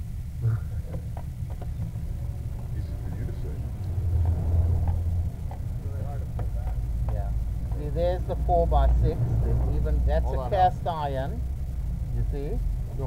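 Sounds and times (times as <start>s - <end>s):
vehicle engine rumble: 0.0s - 13.0s
faint voices talking: 0.4s - 13.0s.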